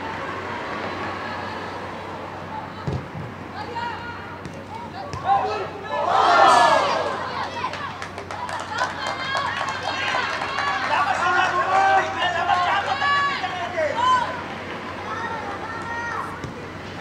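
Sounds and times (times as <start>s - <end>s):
players shouting: 3.6s - 17.0s.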